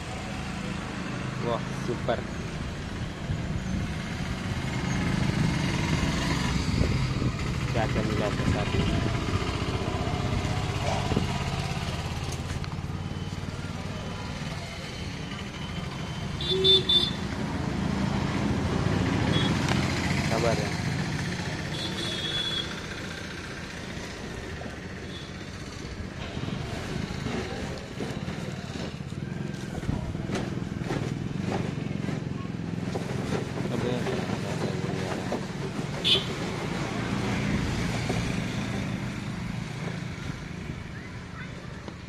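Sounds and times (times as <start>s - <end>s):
low traffic hum: 0.0s - 42.0s
voices: 40.2s - 42.0s.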